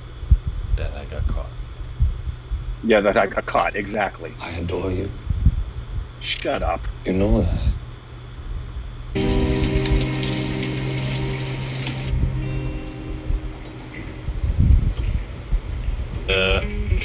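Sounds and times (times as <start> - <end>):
voice-like sound: 2.8 - 4.6, 16.3 - 17.0
sustained musical chord: 9.2 - 15.5.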